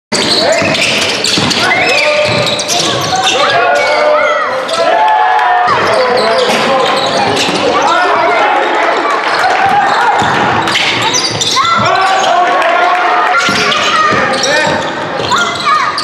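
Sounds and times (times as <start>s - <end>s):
sneakers squeaking on floor: 0.1s - 5.0s, 5.6s - 12.5s, 13.3s - 16.0s
voices calling out: 0.1s - 16.0s
basketball bouncing on wooden court: 0.2s - 3.3s, 9.6s - 12.2s, 13.3s - 15.9s.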